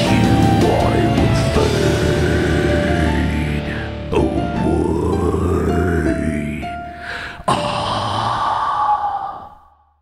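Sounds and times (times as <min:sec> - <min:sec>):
man sighing: 0:06.8 - 0:09.8.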